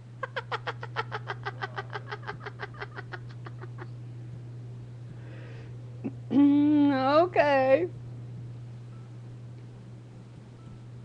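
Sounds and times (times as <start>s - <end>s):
woman cackling laugh: 0.2s - 3.9s.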